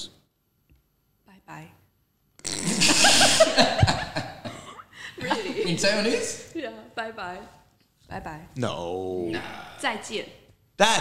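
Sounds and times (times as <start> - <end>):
loud burst of laughter: 2.6 - 4.4.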